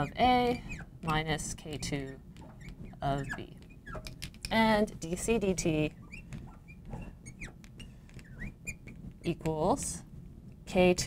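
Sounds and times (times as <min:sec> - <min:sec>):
marker squeaking on glass: 0:00.0 - 0:09.4.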